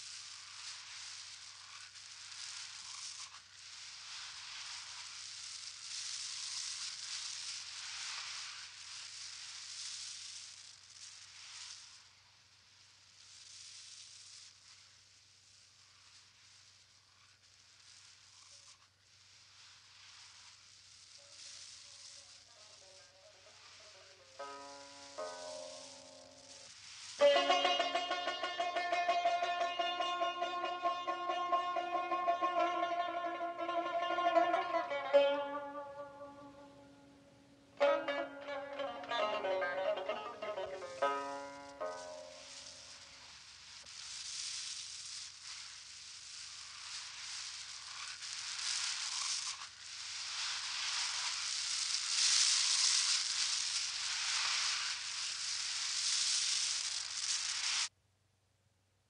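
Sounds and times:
hissing noise: 0.0s - 58.0s
stringed instrument music: 27.2s - 37.2s, 37.8s - 42.3s.

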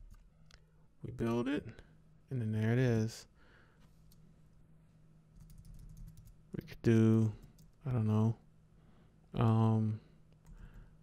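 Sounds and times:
computer keyboard keystrokes: 5.4s - 6.4s, 7.4s - 7.8s.

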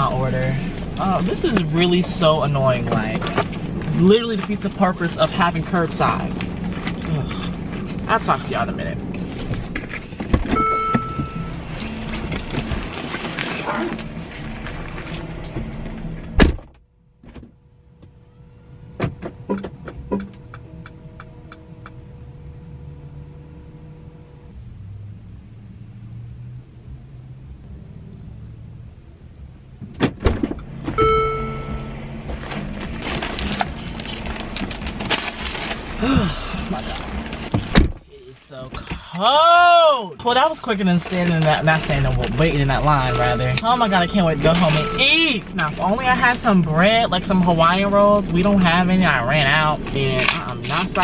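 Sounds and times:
outdoor noise: 0.0s - 51.0s
short car tone: 10.5s - 12.0s, 31.0s - 32.2s, 42.8s - 45.6s
car door shutting thud: 16.3s - 17.5s, 29.8s - 31.9s, 37.5s - 38.0s
car door opening thunk: 16.3s - 17.6s, 29.8s - 31.8s, 37.5s - 38.1s.

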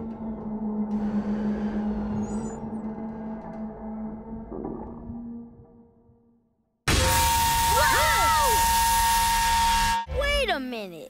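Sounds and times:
cartoon steam whistle: 6.9s - 10.1s.

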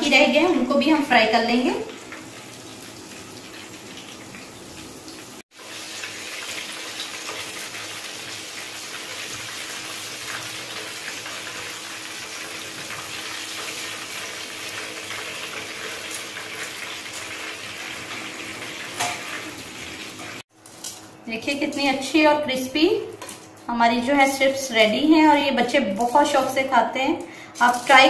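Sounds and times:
chicken deep-frying in oil: 0.0s - 22.3s.

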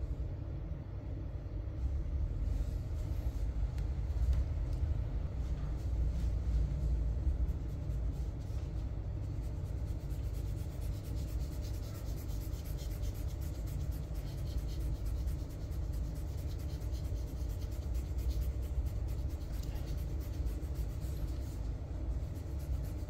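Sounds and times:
low rumble: 0.0s - 10.4s.

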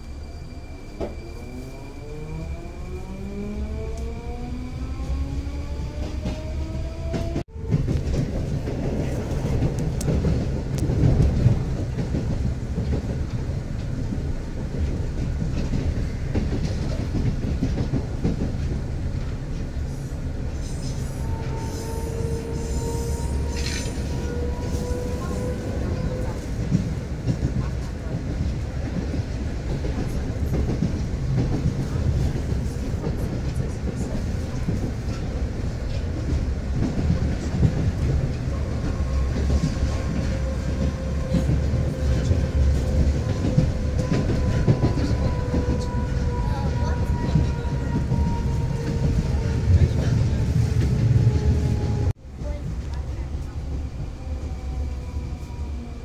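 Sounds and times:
train wheels rumbling: 0.0s - 56.0s.

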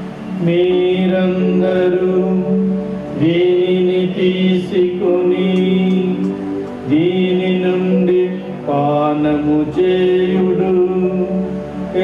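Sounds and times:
sustained accompanying note: 0.0s - 12.0s.

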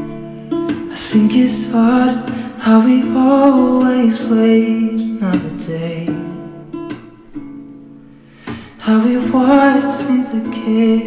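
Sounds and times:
acoustic guitar song: 0.0s - 11.0s.

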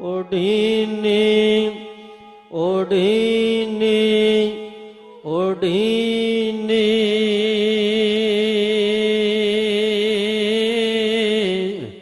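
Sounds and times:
man chanting in sung notes: 0.0s - 12.0s.

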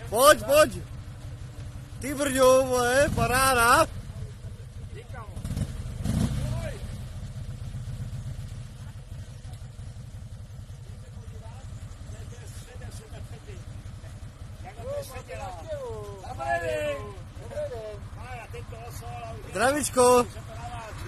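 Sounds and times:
motor trike engine idling: 0.0s - 21.0s.

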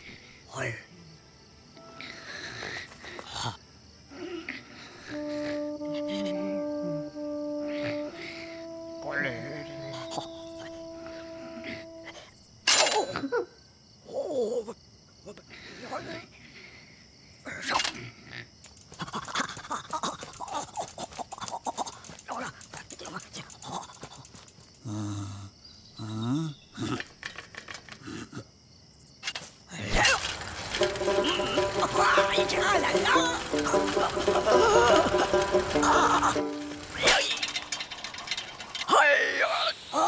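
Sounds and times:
music with held notes: 5.1s - 12.2s, 30.5s - 37.8s
rapid clicks and rattles: 18.7s - 24.8s, 30.0s - 39.0s.

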